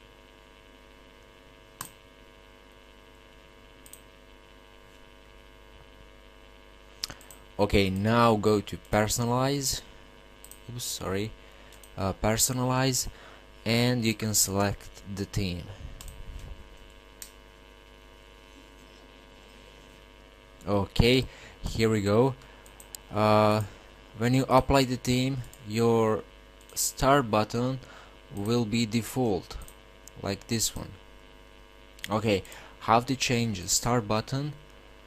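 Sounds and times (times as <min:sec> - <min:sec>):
faint electrical mains hum: 0:00.0 - 0:35.0.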